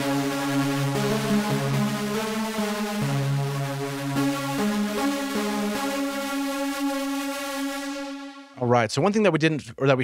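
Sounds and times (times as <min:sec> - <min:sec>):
synthesizer sustained lead note: 0:00.0 - 0:08.6.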